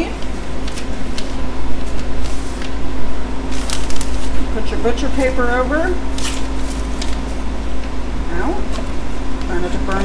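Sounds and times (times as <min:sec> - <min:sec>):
paper rustling: 0:00.0 - 0:02.8, 0:03.5 - 0:07.5
steady low hum: 0:00.0 - 0:10.0.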